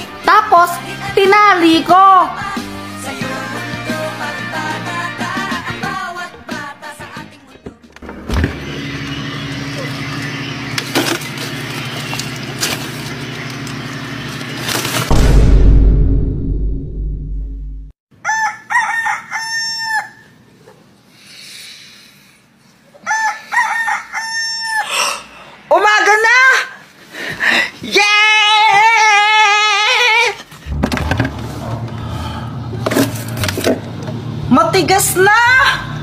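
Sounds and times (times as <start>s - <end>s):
low mechanical hum: 8.0s - 15.1s, 30.4s - 36.0s
rooster crowing: 18.2s - 20.4s, 23.0s - 25.3s.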